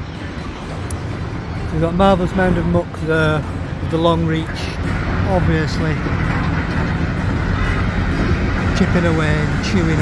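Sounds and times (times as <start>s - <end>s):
excavators rumbling: 0.0s - 10.0s.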